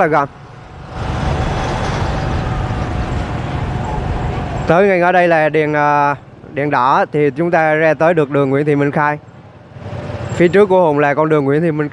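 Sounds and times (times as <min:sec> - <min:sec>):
traffic hum: 0:00.0 - 0:11.9
motorbike engine: 0:00.2 - 0:05.5, 0:06.1 - 0:11.2
wind rushing over microphone: 0:00.3 - 0:06.6.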